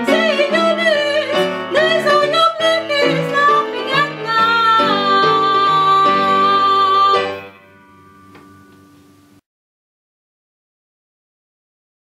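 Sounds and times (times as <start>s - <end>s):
guitar chord ringing: 6.3s - 9.4s.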